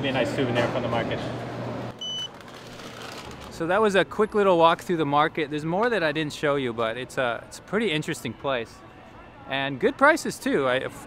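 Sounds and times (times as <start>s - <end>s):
payment terminal beep: 2.0s - 2.4s.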